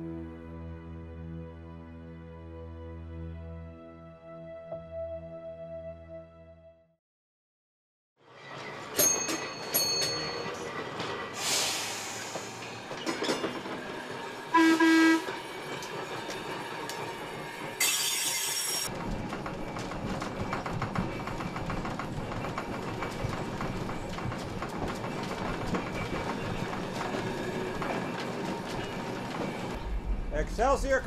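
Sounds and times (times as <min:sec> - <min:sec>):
streetcar wheels clacking on rails: 0:08.5 - 0:14.5, 0:18.9 - 0:30.1
streetcar horn toot: 0:14.5 - 0:15.4.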